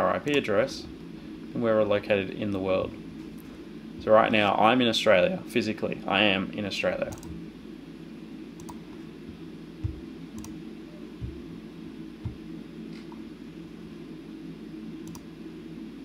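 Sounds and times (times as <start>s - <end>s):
low room hum: 0.0s - 16.0s
computer mouse clicks: 7.1s - 7.4s, 8.6s - 8.8s, 9.8s - 10.6s, 15.0s - 15.3s
soft low thumps: 9.2s - 10.5s, 11.2s - 11.6s, 12.2s - 12.6s.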